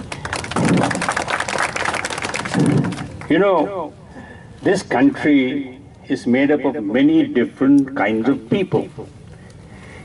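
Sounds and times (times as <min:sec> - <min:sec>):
audience applauding: 0:00.0 - 0:03.3.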